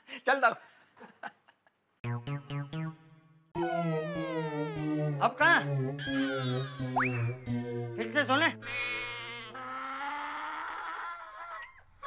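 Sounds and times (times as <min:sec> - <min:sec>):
cartoon pitch glide down: 0:02.0 - 0:09.7
cartoon upward swoop: 0:02.0 - 0:09.8
comedy background music: 0:02.0 - 0:10.2.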